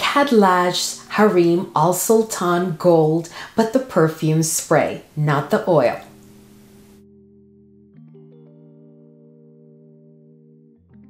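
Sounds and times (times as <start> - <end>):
soft held chord music: 0.4 - 2.3, 6.0 - 11.0
light room hiss: 3.2 - 7.0.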